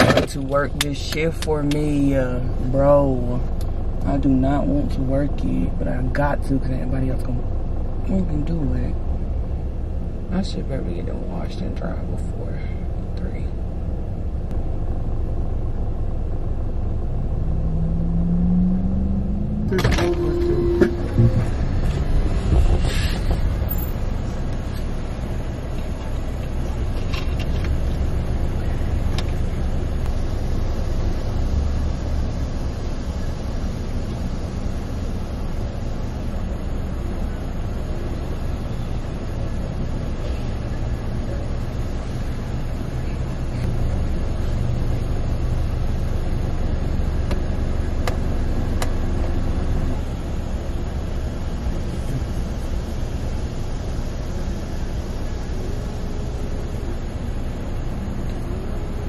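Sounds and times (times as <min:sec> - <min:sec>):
car idling from inside cabin: 0:00.0 - 0:17.1, 0:19.6 - 0:59.0
short rising tone: 0:17.3 - 0:24.0.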